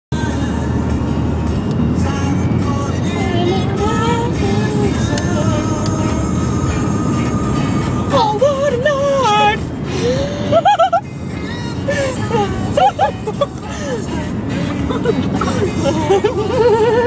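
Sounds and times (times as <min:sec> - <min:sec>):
low rumble of road noise: 0:00.1 - 0:17.0
girl singing: 0:03.2 - 0:05.9.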